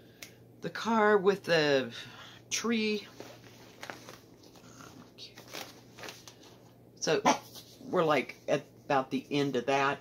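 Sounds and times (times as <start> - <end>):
paper and cloth rustling: 3.0 - 6.7
small crackles: 3.2 - 6.5.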